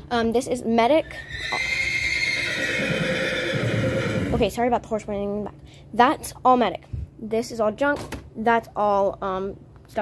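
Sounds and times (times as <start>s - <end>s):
horse whinnying: 1.2s - 4.4s.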